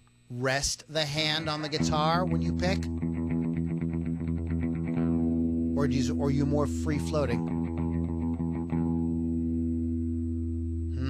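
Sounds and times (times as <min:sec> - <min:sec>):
electric guitar note ringing: 0:01.3 - 0:11.0.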